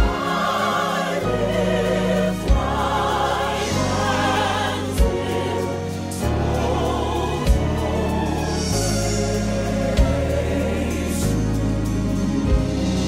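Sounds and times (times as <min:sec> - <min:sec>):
gospel choir singing: 0:00.0 - 0:13.0
strings: 0:00.0 - 0:13.0.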